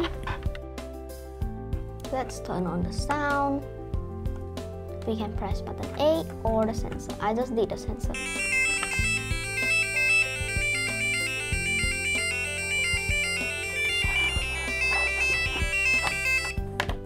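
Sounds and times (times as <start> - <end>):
piezo buzzer beeping melody: 8.2 - 16.6.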